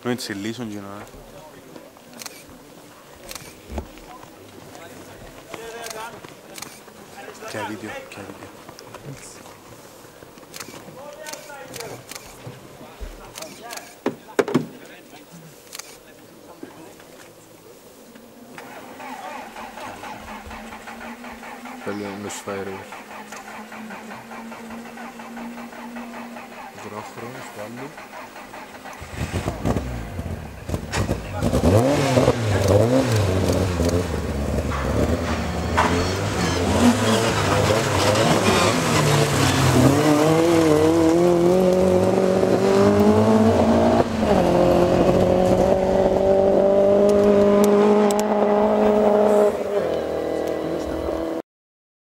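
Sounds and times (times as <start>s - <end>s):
rally car engine revving: 18.6s - 51.4s.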